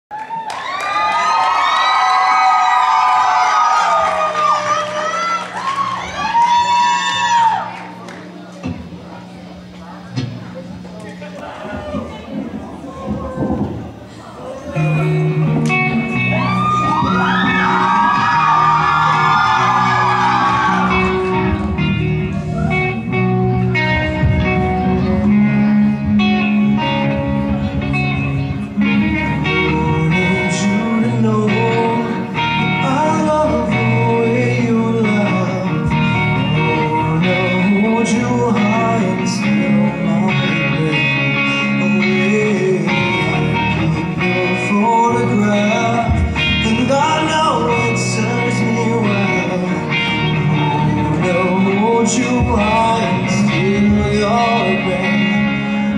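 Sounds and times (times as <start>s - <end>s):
high-pitched screams and whoops: 0.1s - 7.9s, 16.1s - 21.6s
audience cheering: 0.1s - 8.4s, 15.6s - 23.0s
electric guitar chords: 0.6s - 55.9s
live rock band playing: 1.0s - 55.9s.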